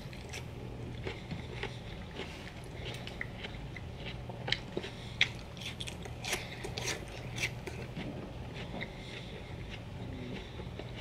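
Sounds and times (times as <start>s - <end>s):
close chewing of raw pepper: 0.0s - 11.0s
steady low hum: 0.0s - 11.0s.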